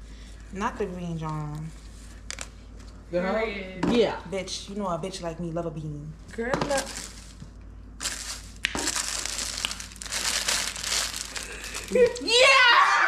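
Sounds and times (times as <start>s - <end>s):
gift wrapping rustling: 6.7s - 7.4s, 8.0s - 12.3s
person shouting yeah: 11.9s - 13.0s.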